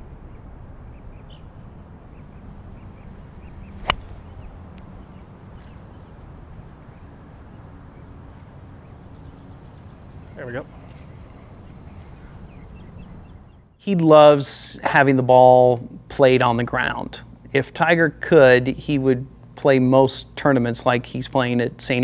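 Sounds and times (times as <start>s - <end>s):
outdoor background hush: 0.0s - 13.9s
golf club striking ball: 2.3s - 6.5s.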